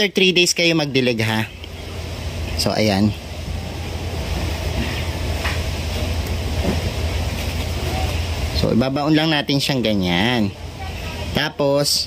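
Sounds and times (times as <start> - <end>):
steady low rumble: 1.0 - 11.1.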